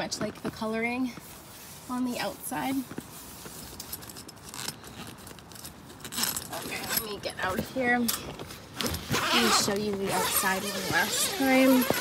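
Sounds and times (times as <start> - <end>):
rustling and clinking in a tent: 0.0 - 12.0
crinkle: 2.8 - 7.0, 8.1 - 12.0.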